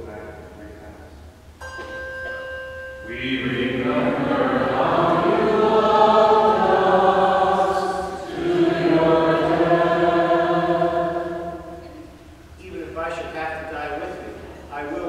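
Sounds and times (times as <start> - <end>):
group singing a hymn: 3.0 - 12.3.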